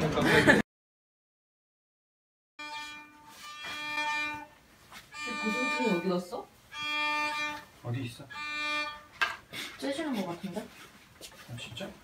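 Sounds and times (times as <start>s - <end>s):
electric violin bowed notes: 2.6s - 9.2s.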